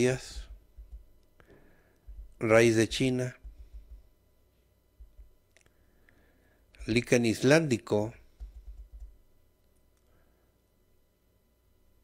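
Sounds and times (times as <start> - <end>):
soft low thumps: 0.2 - 1.1, 2.1 - 4.1, 5.0 - 5.4
computer keyboard clicking: 8.4 - 9.2.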